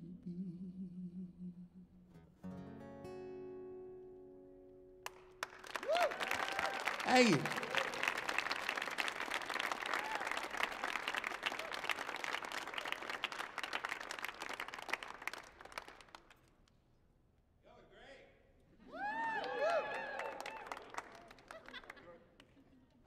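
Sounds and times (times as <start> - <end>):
audience applauding and cheering: 5.1 - 16.3, 18.9 - 22.0
crowd shouts: 5.8 - 8.1.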